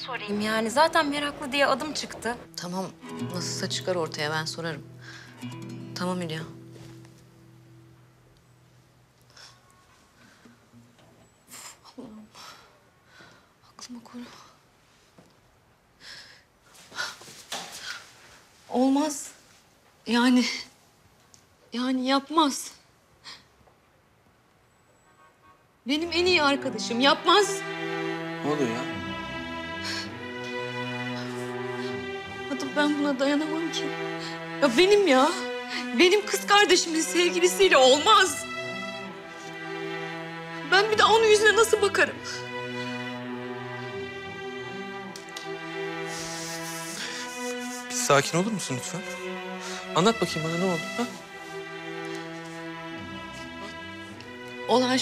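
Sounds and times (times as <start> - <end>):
bowed strings holding slow notes: 26.0 - 47.8.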